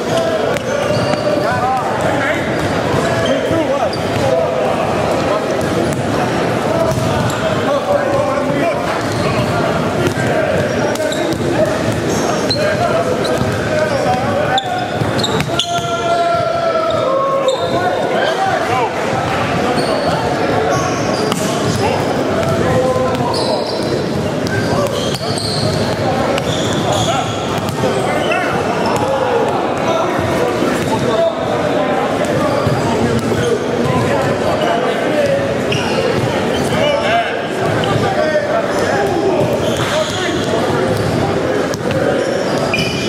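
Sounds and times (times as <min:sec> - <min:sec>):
voices talking and calling out: 0:00.0 - 0:43.0
basketballs bouncing on hardwood floor: 0:00.1 - 0:03.3, 0:05.5 - 0:07.4, 0:08.1 - 0:16.6, 0:22.4 - 0:28.0, 0:32.3 - 0:33.4, 0:36.1 - 0:36.3, 0:39.1 - 0:42.0.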